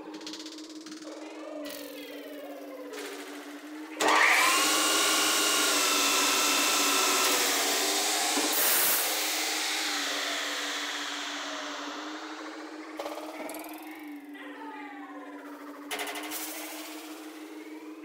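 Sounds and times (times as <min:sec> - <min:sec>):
metal lathe running: 0:04.0 - 0:13.0.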